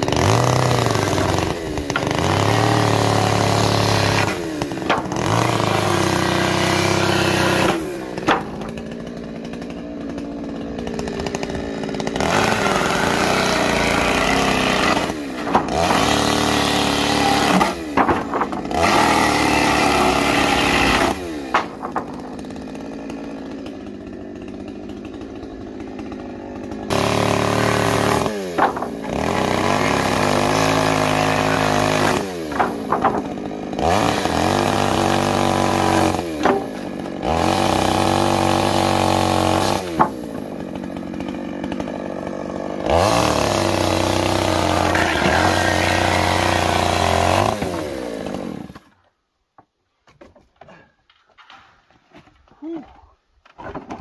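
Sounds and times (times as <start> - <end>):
chainsaw cutting wood: 0.0 - 52.8.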